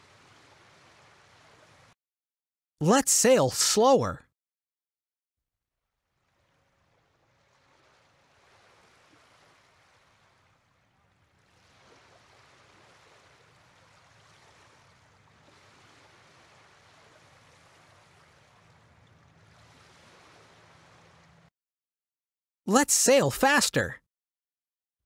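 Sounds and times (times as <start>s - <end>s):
waves washing against boat: 7.6s - 10.7s, 11.4s - 21.5s.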